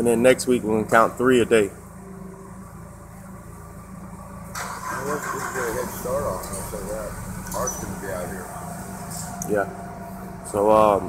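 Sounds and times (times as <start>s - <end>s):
loud running noise: 0.0s - 11.0s
low mechanical drone: 0.0s - 11.0s.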